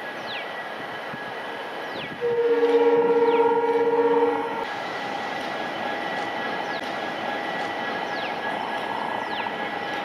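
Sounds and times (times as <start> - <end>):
locomotive horn chord: 2.2 - 4.6.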